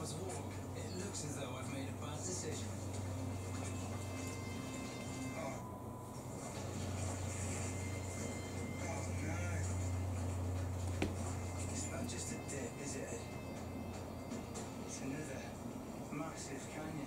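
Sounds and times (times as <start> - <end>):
television speech: 0.0 - 5.7, 6.3 - 17.0
steady low hum: 0.0 - 17.0
television music: 0.0 - 17.0.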